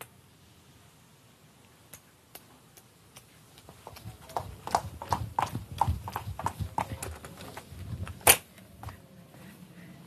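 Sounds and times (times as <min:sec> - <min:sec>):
footsteps on wooden floor: 0:03.7 - 0:08.2.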